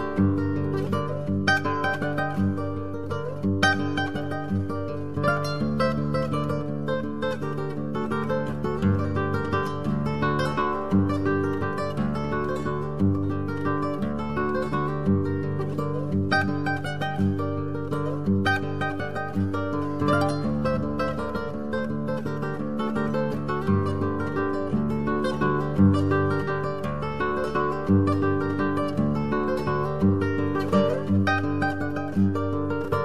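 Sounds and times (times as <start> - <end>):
solo classical guitar: 0.0 - 33.0.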